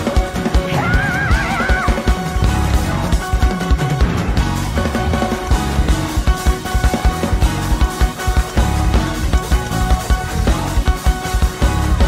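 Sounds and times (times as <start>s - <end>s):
drums pounding quick beat: 0.0s - 12.0s
gospel band music: 0.0s - 12.0s.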